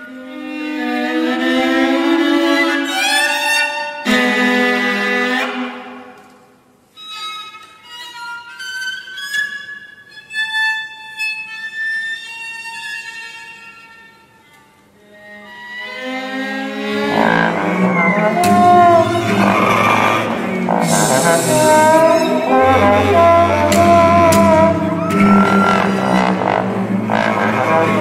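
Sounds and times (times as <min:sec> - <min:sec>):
viola high held notes: 0:16.7 - 0:28.0
ensemble playing low notes: 0:17.0 - 0:28.0
bass trombone: 0:17.1 - 0:28.0.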